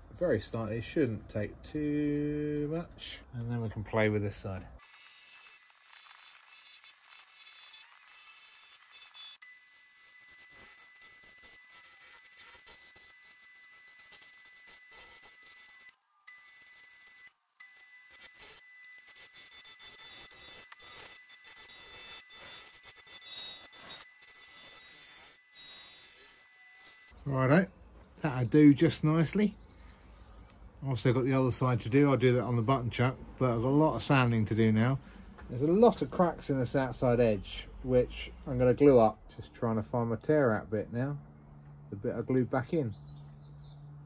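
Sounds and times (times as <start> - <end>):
lathe tool cutting wood: 4.8 - 27.2.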